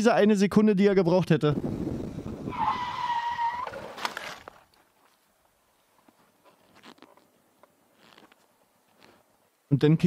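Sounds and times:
motorcycle tyre squealing: 1.7 - 4.2.

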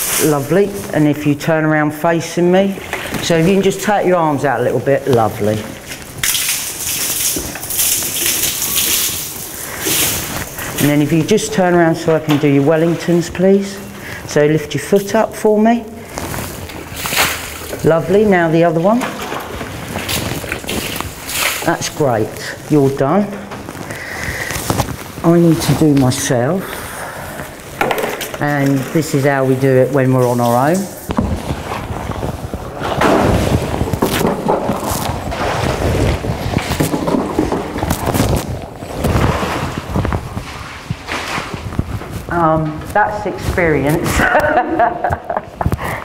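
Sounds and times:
liquid sloshing and splashing: 2.4 - 15.2, 15.8 - 42.3
wet hiss and splashing: 5.7 - 11.0, 19.3 - 22.7, 23.7 - 25.3
knocks and thuds: 31.1 - 40.0.

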